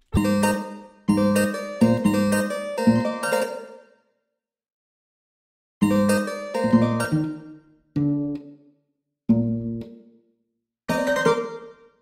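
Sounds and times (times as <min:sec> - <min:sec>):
plucked bass guitar notes: 0:00.0 - 0:02.1.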